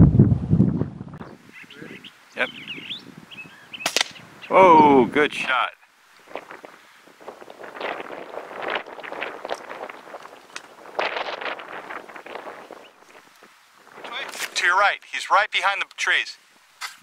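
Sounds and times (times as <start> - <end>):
branches crackling and rustling: 1.3 - 4.8, 5.8 - 17.0.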